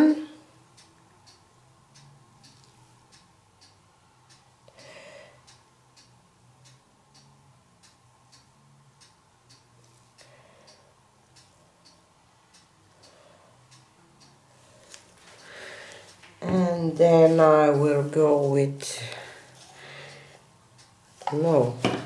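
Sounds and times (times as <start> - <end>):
faint steady ticking: 0.0 - 22.0.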